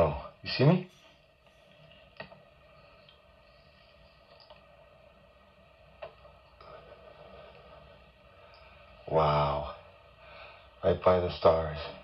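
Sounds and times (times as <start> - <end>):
faint background hum and hiss: 0.0 - 12.0.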